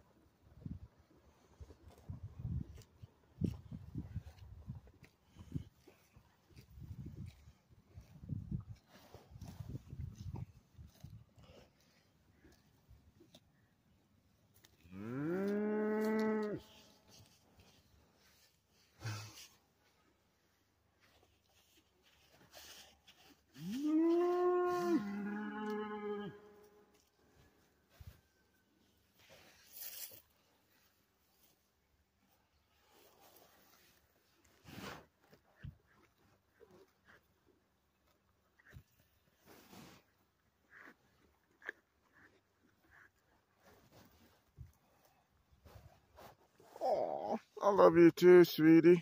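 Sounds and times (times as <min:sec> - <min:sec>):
calf grazing: 0:00.1 - 0:49.0
cow mooing: 0:14.9 - 0:16.8, 0:23.6 - 0:26.6.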